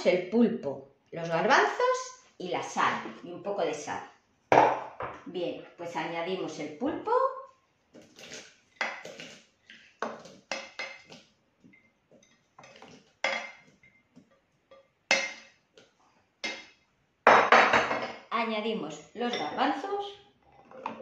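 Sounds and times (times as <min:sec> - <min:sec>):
food scraped into steel jug: 0:08.0 - 0:09.6.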